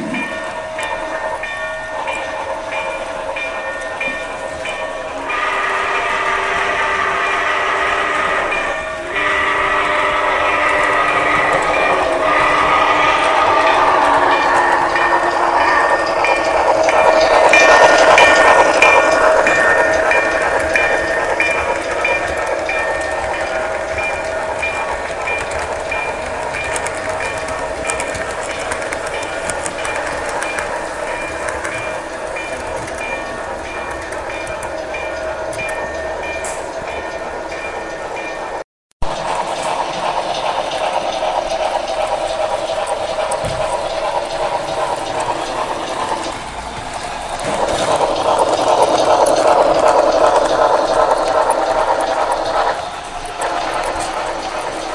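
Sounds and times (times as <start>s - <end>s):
model train wheels clicking: 0.1s - 54.9s
held horn-like tones: 5.2s - 21.4s.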